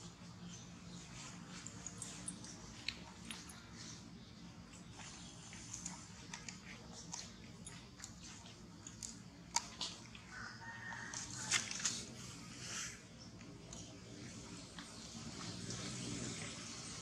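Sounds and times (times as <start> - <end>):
monkey chewing fruit: 4.7 - 10.3.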